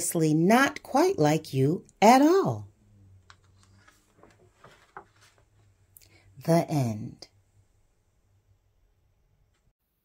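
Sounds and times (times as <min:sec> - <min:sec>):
book page turning: 0:03.2 - 0:05.7.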